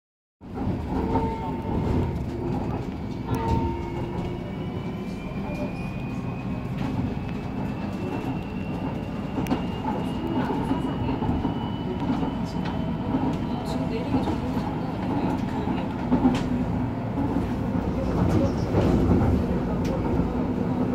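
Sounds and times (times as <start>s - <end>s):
train running gear rumble: 0.4s - 20.9s.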